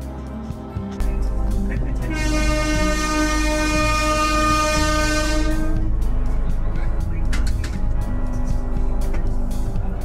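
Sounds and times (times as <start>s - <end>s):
train horn blast: 2.0s - 6.1s.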